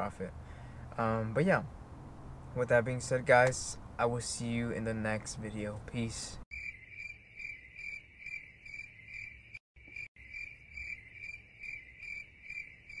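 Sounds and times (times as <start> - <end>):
crickets chirping: 6.5 - 13.0.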